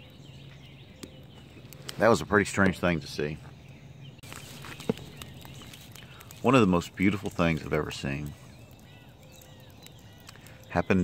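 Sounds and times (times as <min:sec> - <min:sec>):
distant bird calls: 0:00.0 - 0:11.0.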